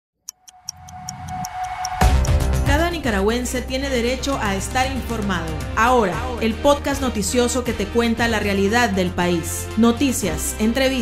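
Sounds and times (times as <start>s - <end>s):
clock-style ticking: 0.3s - 2.4s.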